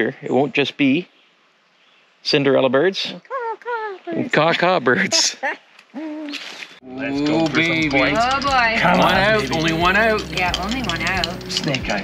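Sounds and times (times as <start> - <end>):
man laughing: 4.1 - 6.3.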